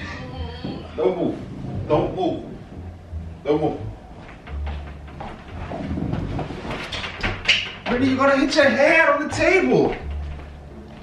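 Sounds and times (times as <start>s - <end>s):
footsteps on hardwood floor: 3.9s - 8.6s, 9.3s - 11.0s.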